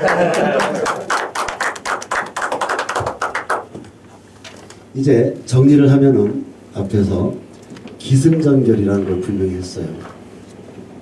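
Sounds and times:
audience clapping: 0.0s - 3.9s.

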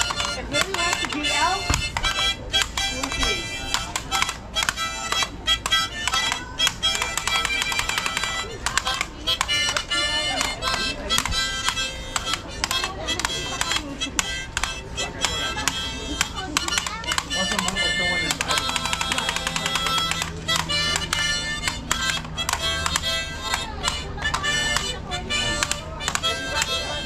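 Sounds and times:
harmonica chords and notes: 0.0s - 27.0s.

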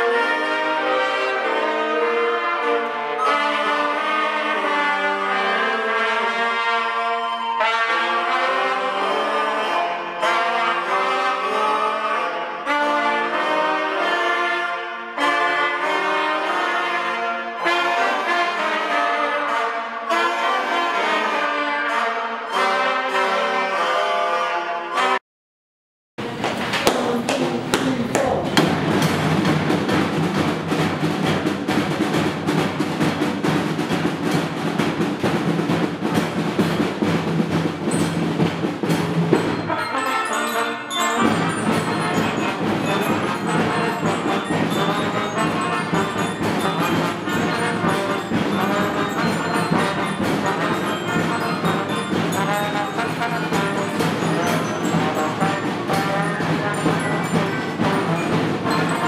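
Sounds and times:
children's brass band playing: 0.0s - 25.2s, 26.2s - 59.0s.

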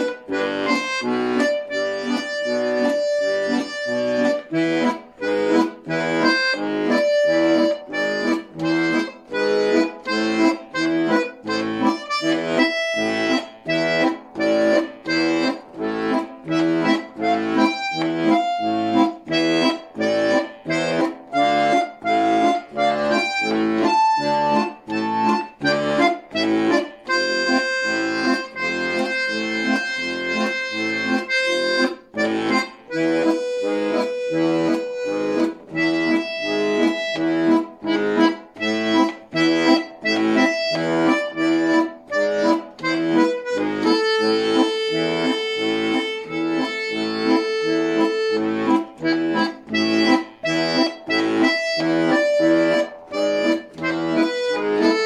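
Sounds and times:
button accordion playing: 0.0s - 55.0s.

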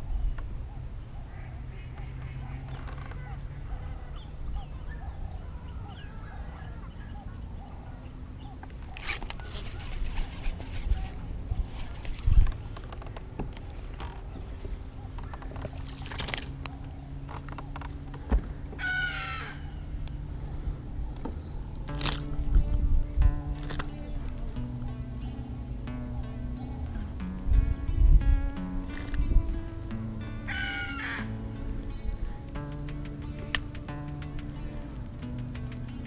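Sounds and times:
steady low hum: 0.0s - 36.0s
faint waterfowl calls: 0.6s - 12.2s, 13.6s - 21.6s, 30.5s - 31.4s
fishing reel clicks and rustles: 8.7s - 18.1s, 21.2s - 22.6s, 23.5s - 24.4s, 28.8s - 29.2s.

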